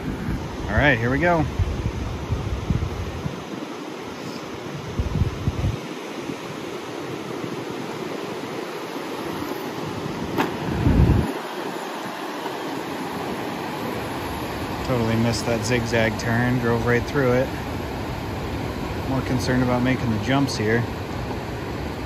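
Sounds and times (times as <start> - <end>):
wind buffeting microphone: 0.0 - 3.7, 4.6 - 7.8, 9.2 - 22.0
ocean surf: 0.0 - 22.0.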